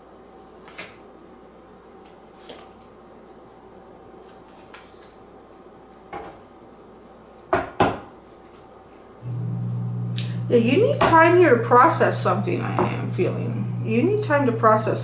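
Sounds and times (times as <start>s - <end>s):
knocks on a table: 7.5s - 8.1s
low steady hum: 9.1s - 15.0s.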